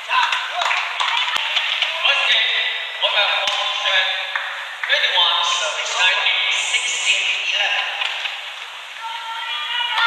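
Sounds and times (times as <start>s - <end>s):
crowd clapping: 0.0s - 2.2s, 3.4s - 5.2s.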